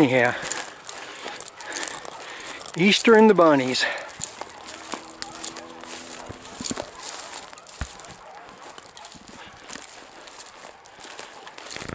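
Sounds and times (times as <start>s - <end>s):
dogs baying in the distance: 0.0s - 11.9s
footsteps through dry grass: 0.0s - 11.9s.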